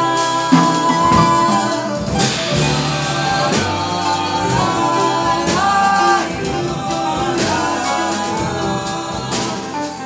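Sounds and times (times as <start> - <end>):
bass: 0.0 - 10.0
drum kit with cymbals: 0.0 - 10.0
piano: 0.0 - 10.0.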